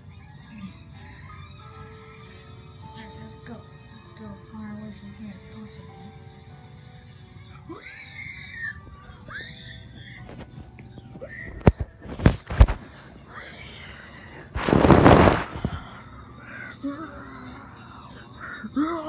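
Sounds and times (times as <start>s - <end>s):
loud rustling burst: 14.6s - 15.8s.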